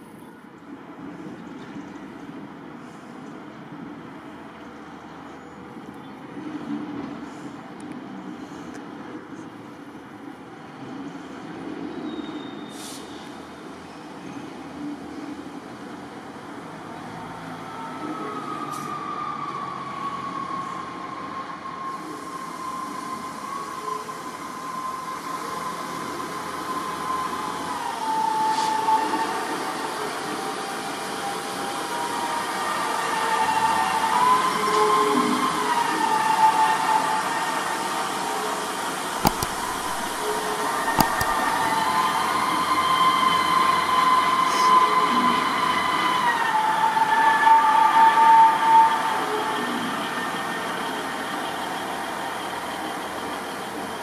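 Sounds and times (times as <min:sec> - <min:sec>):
train engine whine: 0:00.0 - 0:54.0
train noise: 0:00.0 - 0:54.0
sharp clicks: 0:39.2 - 0:41.5.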